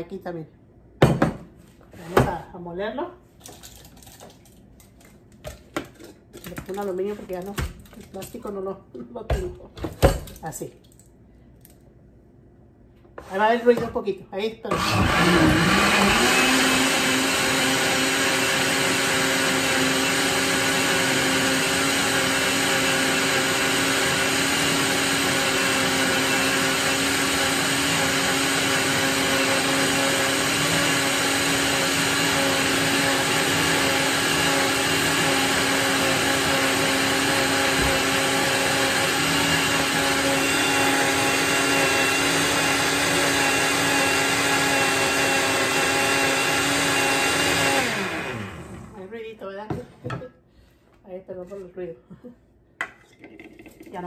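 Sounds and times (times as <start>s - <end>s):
blender motor running: 14.7s - 49.1s.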